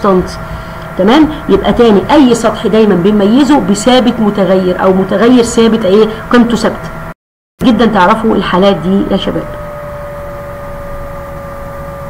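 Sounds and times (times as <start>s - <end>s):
background hum and hiss: 0.0s - 12.0s
high-pitched whine: 0.0s - 12.0s.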